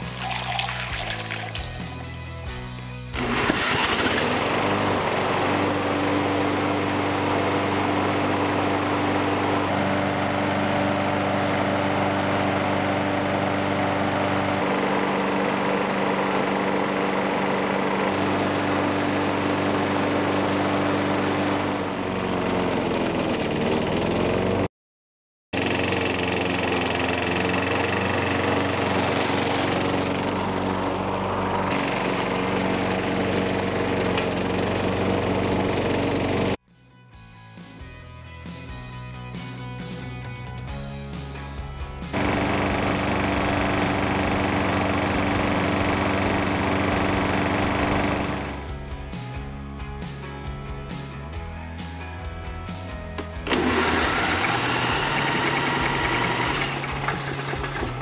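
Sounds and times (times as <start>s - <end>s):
lawn mower engine running: 0.0s - 24.7s, 25.6s - 36.6s, 42.0s - 49.2s, 52.8s - 58.0s.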